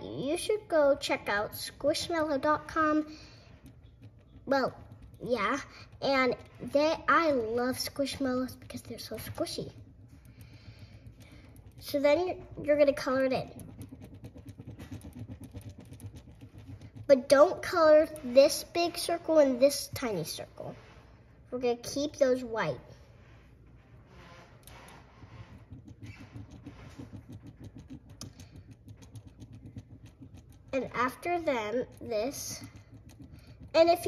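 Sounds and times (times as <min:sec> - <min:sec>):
marker scribbling on paper: 0:01.1 - 0:20.1, 0:24.2 - 0:34.0.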